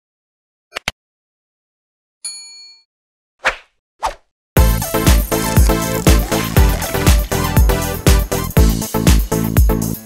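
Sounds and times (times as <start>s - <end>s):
ringing bell-like ding: 2.2s - 2.9s
electronic dance music: 4.6s - 9.2s.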